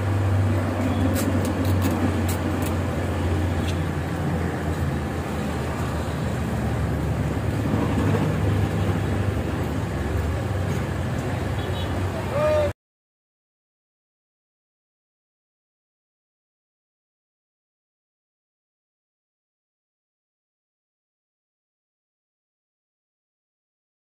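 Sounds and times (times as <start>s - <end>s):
motor vehicles rumbling past: 0.0s - 12.7s.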